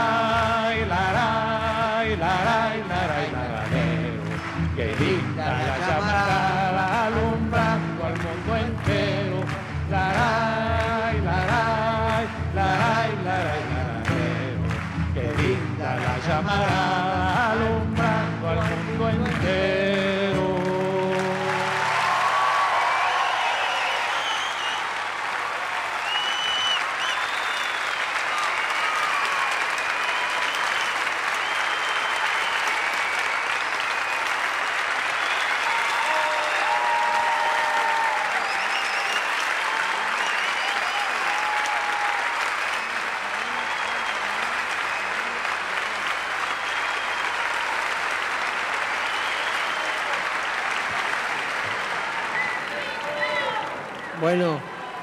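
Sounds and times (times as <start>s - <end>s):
audience applauding: 0.0s - 55.0s.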